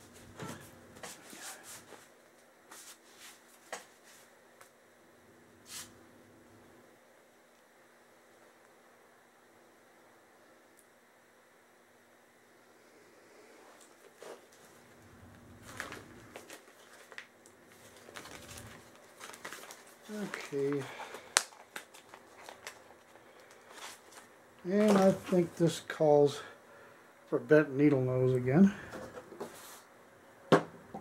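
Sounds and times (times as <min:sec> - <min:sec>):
plastic bag crinkling: 0:15.6 - 0:25.6
person speaking: 0:20.0 - 0:21.4, 0:24.6 - 0:26.6, 0:27.3 - 0:29.0
person murmuring: 0:20.1 - 0:21.1.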